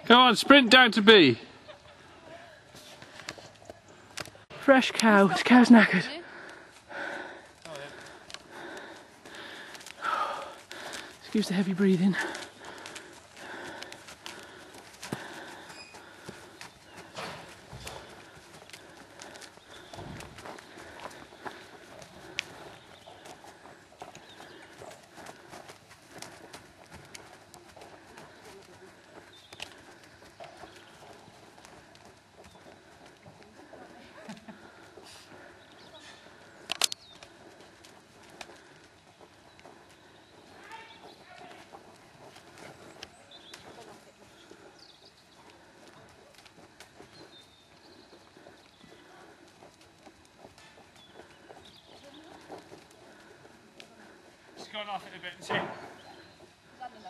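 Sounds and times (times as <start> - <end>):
horse hoofbeats: 5.1 - 57.0.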